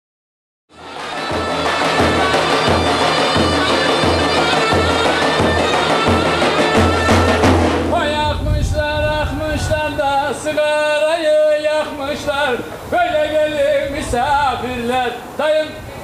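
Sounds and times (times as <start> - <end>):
shrill reed pipe folk melody: 0.7 - 14.2.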